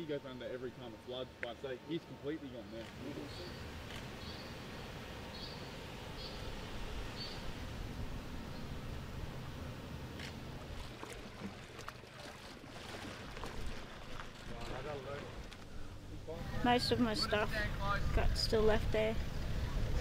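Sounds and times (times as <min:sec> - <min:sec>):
bird chirping: 0:03.2 - 0:07.5
low wind rumble: 0:03.4 - 0:11.4, 0:15.2 - 0:20.0
splashes in water: 0:10.6 - 0:15.6.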